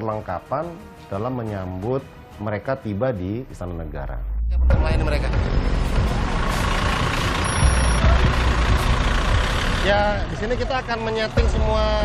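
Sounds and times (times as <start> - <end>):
street traffic: 4.8 - 12.0
heavy vehicle engine running: 5.3 - 11.6.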